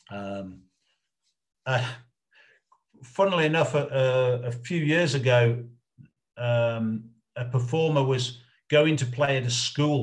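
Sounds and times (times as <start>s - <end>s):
faint breath: 2.3s - 2.8s.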